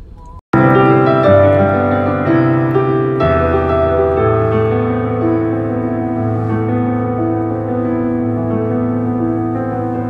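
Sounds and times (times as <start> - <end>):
digital piano chords: 0.5 - 10.0.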